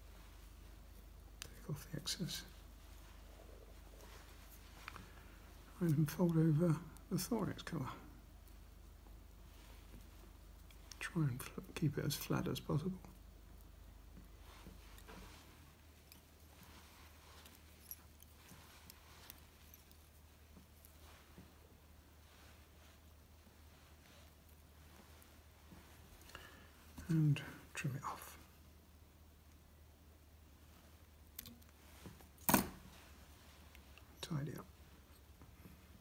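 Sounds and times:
faint thread rustles: 0:00.0 - 0:36.0.

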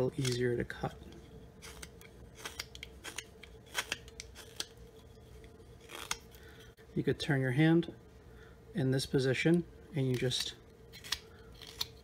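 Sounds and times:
knife cutting wood chips: 0:01.6 - 0:04.7, 0:05.8 - 0:06.2.

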